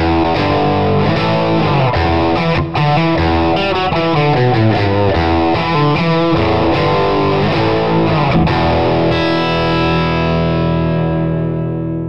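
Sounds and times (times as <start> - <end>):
distorted electric guitar: 0.0 - 12.0.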